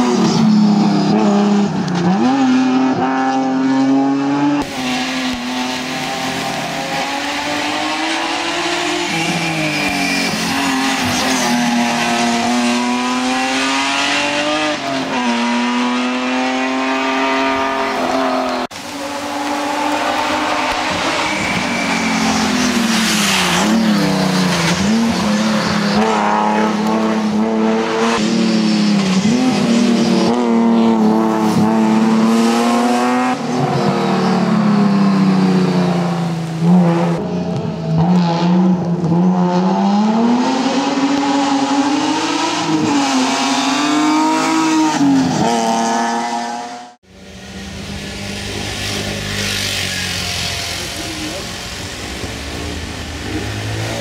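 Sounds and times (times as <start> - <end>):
race car engine revving: 0.0 - 54.0
tyres hissing on wet road: 4.7 - 15.6, 16.2 - 27.2, 47.1 - 54.0.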